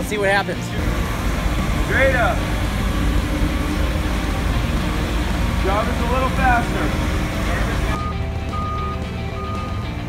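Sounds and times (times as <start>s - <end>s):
forklift engines running: 0.0s - 10.0s.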